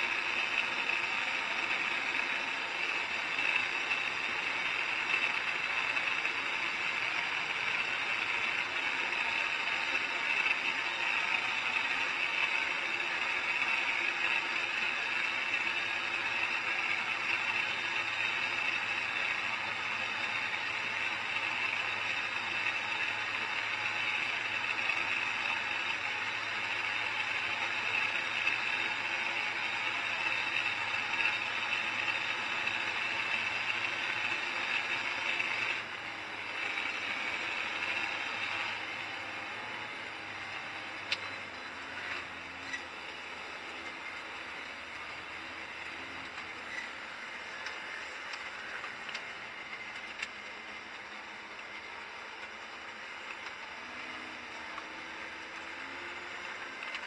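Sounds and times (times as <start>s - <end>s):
machine cab running noise: 0.0s - 57.0s.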